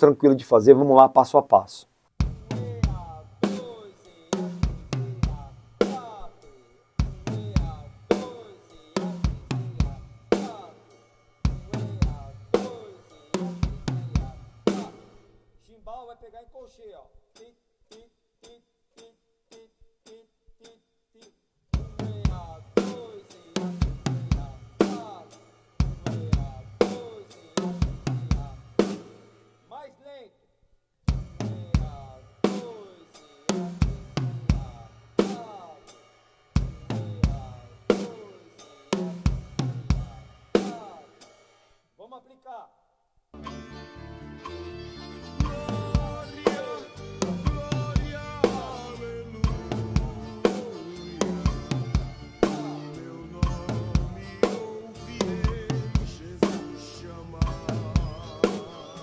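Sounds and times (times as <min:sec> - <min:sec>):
drum kit tom groove: 0:02.2 - 0:15.4, 0:21.7 - 0:29.6, 0:31.1 - 0:41.8, 0:45.4 - 0:59.0.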